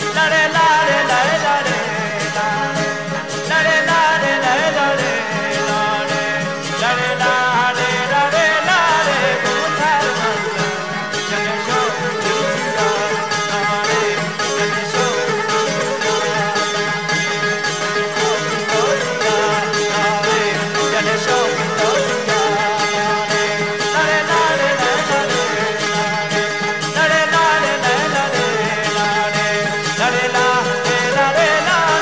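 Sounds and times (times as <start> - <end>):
bowed fiddle: 0.0 - 32.0
man singing: 0.0 - 32.0
strummed lute drone: 0.0 - 32.0.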